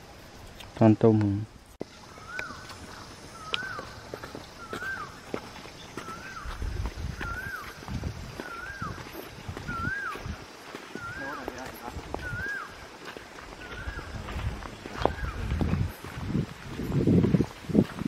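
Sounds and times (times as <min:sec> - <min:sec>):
footsteps on dirt path: 0:00.0 - 0:18.0
bird whistled call: 0:03.3 - 0:04.0, 0:04.6 - 0:05.2, 0:05.9 - 0:07.8, 0:08.4 - 0:11.6, 0:12.2 - 0:12.8, 0:13.6 - 0:14.2.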